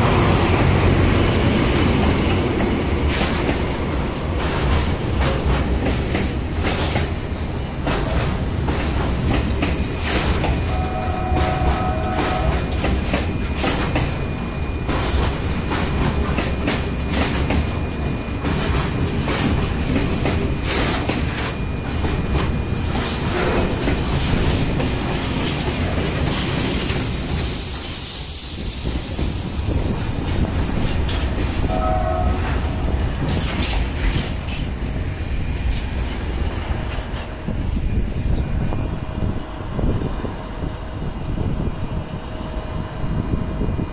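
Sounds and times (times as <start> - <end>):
train rumbling on track: 0.0 - 43.9
brief high tone: 10.7 - 12.7, 31.7 - 32.8.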